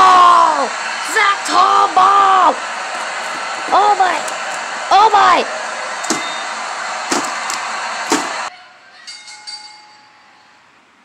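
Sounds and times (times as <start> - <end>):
steady background noise: 0.0 - 9.0.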